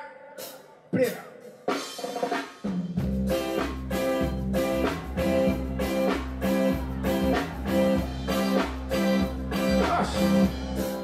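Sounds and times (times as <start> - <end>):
electric guitar chords: 3.0 - 11.0
sustained bass line: 3.0 - 11.0.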